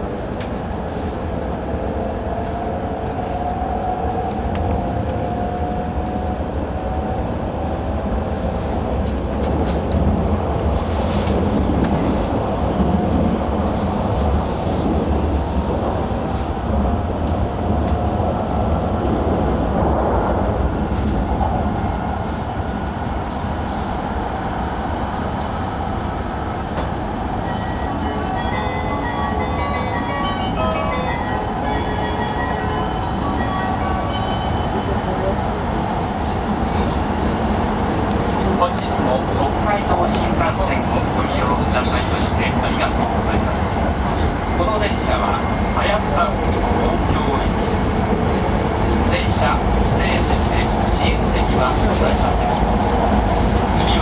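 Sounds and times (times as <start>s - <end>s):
train rumbling on track: 0.0s - 54.0s.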